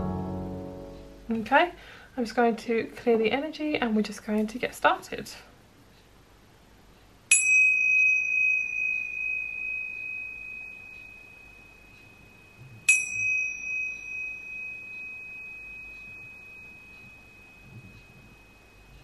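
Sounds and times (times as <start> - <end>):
tingsha cymbals ringing: 7.3 - 19.0.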